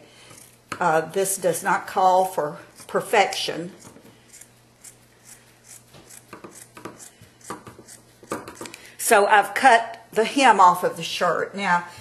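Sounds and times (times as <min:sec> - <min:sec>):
scissors snipping fabric: 0:02.8 - 0:08.8.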